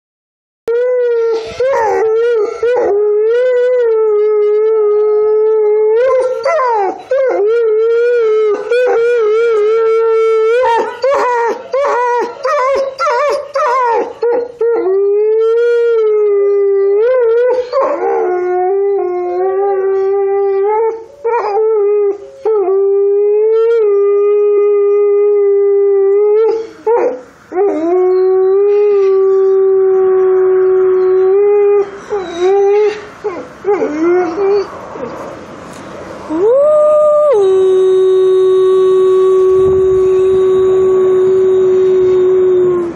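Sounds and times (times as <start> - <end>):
wolf howling: 0.7 - 35.2, 36.3 - 42.9.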